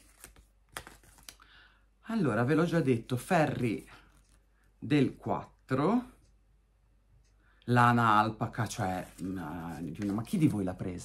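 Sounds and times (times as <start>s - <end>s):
paper rustling: 0.0s - 1.4s, 8.7s - 11.0s.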